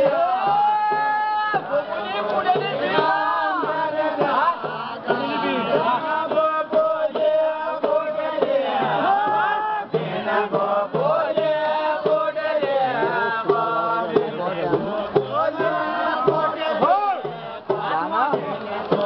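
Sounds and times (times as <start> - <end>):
crowd noise: 0.0 - 19.0
group of men singing: 0.0 - 19.0.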